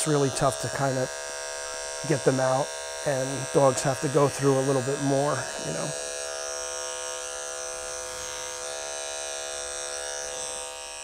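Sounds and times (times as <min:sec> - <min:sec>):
electric clipper humming: 0:00.0 - 0:11.0.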